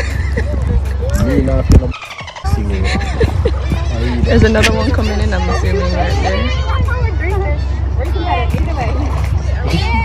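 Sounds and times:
people talking indistinctly: 0.0s - 10.0s
steady low rumble: 0.0s - 10.0s.

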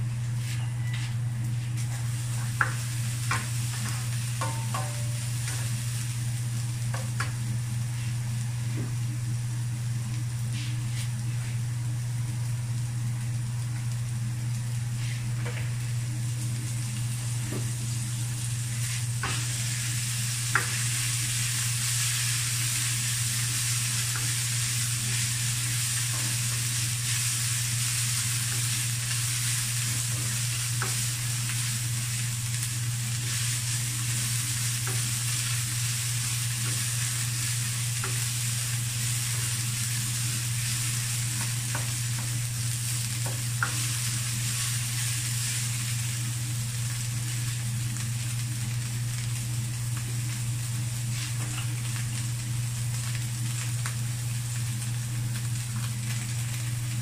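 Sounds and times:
steady low hum: 0.0s - 57.0s
meat sizzling in a wok: 1.2s - 57.0s.

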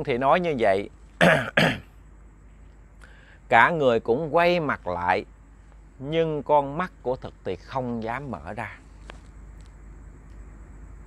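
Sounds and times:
man clearing throat: 1.2s - 1.9s.

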